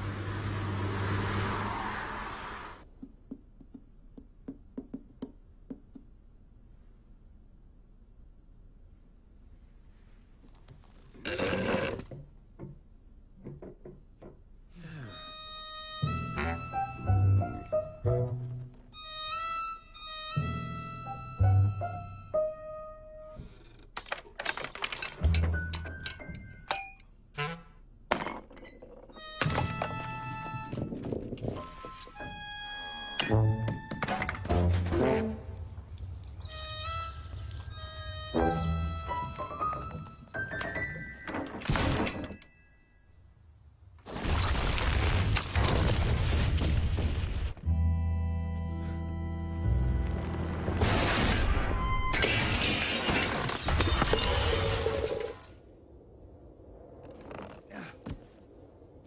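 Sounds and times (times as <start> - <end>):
held notes of music: 36.5 - 40.6
glass shattering: 52.1 - 55.3.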